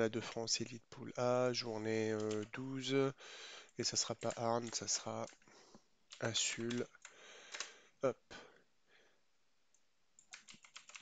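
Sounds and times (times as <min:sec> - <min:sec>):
faint keyboard keystrokes: 0:06.1 - 0:07.8, 0:10.2 - 0:11.0.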